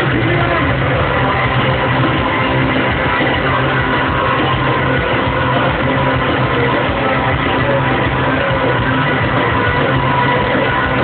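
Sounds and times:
rock band playing loudly: 0:00.0 - 0:11.0.

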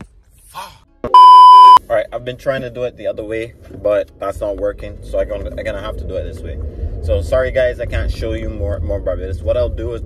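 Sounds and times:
electronic censor bleep: 0:01.1 - 0:01.8.

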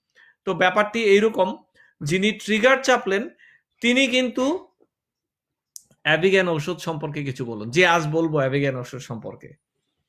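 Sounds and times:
man speaking: 0:00.5 - 0:04.8, 0:05.8 - 0:09.6.

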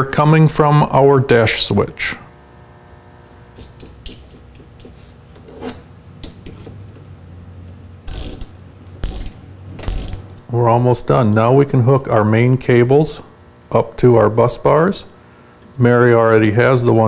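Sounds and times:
socket ratchet clicking: 0:08.1 - 0:10.4.

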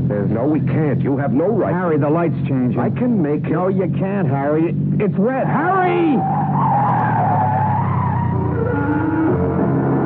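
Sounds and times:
car tyres screeching: 0:00.0 - 0:10.0.

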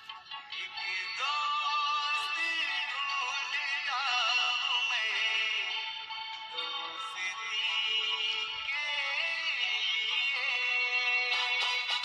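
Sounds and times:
person singing over music: 0:00.0 - 0:12.0.

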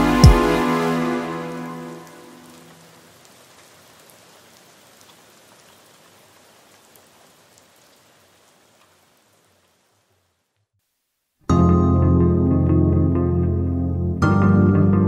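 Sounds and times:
r and b song: 0:00.0 - 0:02.4
hiss with crackles: 0:00.0 - 0:11.4.

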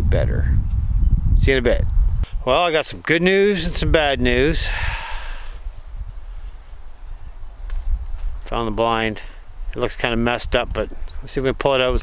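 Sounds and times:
wind buffeting microphone: 0:00.0 - 0:12.0
short breath: 0:04.6 - 0:06.6.

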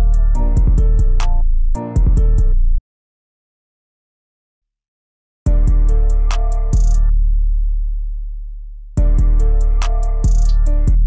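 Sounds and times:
beat with hi-hats: 0:00.0 - 0:02.5, 0:05.5 - 0:07.1, 0:09.0 - 0:11.0.

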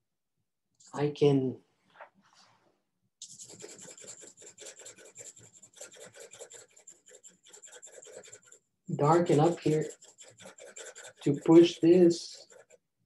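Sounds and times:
pencil scratching on paper: 0:03.2 - 0:13.0.

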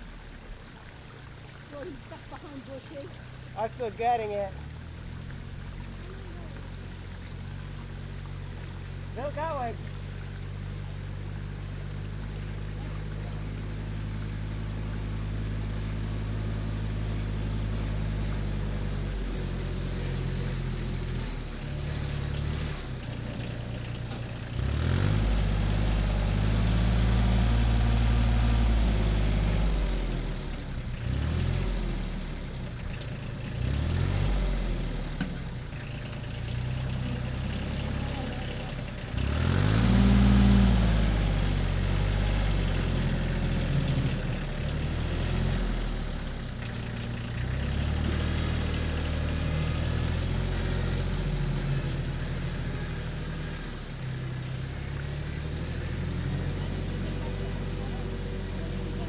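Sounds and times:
tractor engine revving: 0:01.8 - 0:59.0.

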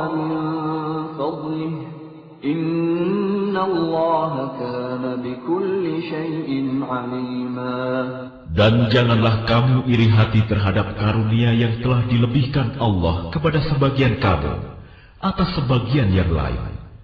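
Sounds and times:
man chanting recitation: 0:00.0 - 0:16.8.

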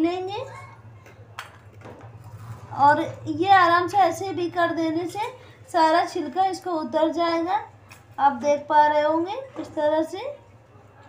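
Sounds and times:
woman's voice: 0:00.0 - 0:00.6, 0:02.7 - 0:10.4
low steady hum: 0:00.0 - 0:11.0.

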